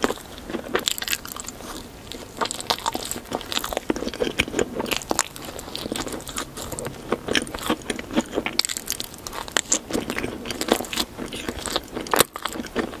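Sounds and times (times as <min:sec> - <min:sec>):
chewing crunchy cake: 0:00.0 - 0:13.0.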